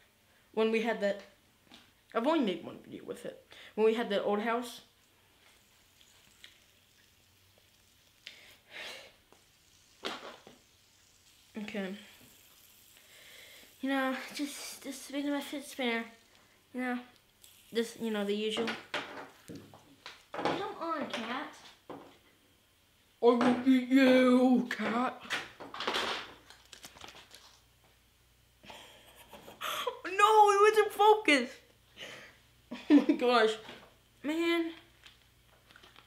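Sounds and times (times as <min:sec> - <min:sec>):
faint background hiss: 0:00.0 - 0:36.0
boy's voice: 0:13.8 - 0:16.2, 0:16.8 - 0:17.1, 0:17.8 - 0:18.8, 0:20.5 - 0:21.6, 0:23.2 - 0:25.2, 0:29.9 - 0:31.6, 0:33.1 - 0:34.8.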